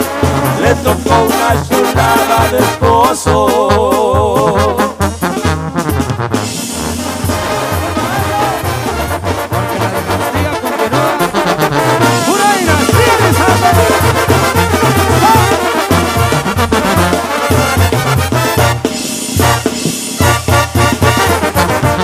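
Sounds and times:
bouncing bass line: 0.0 - 22.0
brass horns playing: 0.0 - 22.0.

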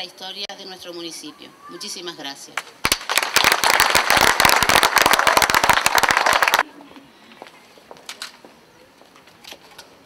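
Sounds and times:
audience applauding: 2.9 - 6.6.

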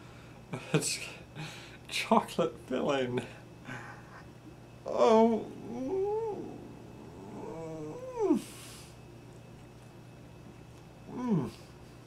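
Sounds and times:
man moaning with enjoyment: 4.9 - 8.5, 11.1 - 11.6.

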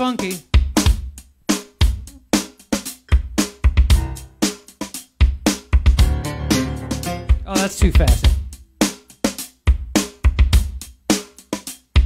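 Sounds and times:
drum machine beat: 0.0 - 12.0.

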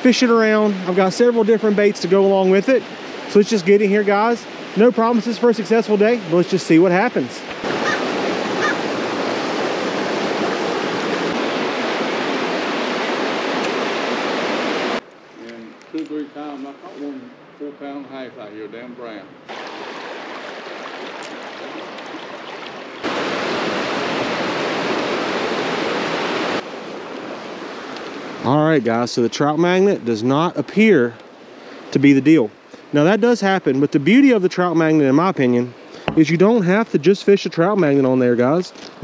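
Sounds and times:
creek water rushing over rocks: 0.0 - 15.0, 19.5 - 28.5.

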